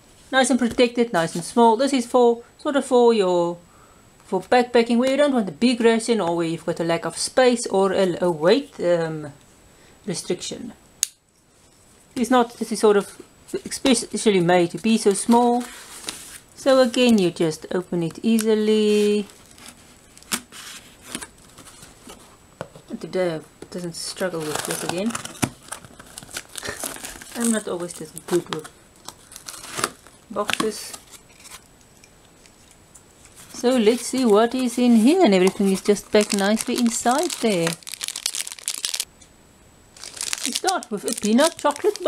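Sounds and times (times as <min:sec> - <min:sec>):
plastic packaging crinkling: 0:24.2 - 0:31.7, 0:32.4 - 0:39.1, 0:39.9 - 0:42.0.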